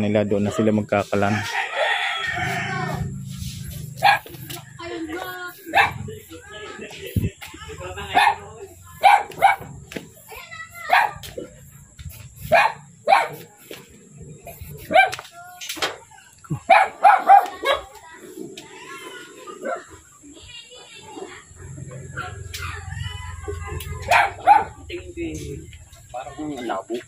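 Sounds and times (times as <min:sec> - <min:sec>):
dog barking: 0:03.6 - 0:04.6, 0:05.5 - 0:06.3, 0:08.0 - 0:11.5, 0:12.4 - 0:13.6, 0:14.5 - 0:15.6, 0:16.6 - 0:18.0, 0:24.0 - 0:24.9.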